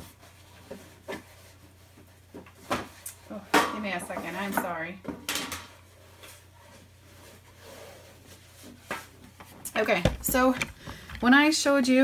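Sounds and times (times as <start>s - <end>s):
faint rustling: 9.4s - 11.5s
quick knocks: 9.9s - 11.3s.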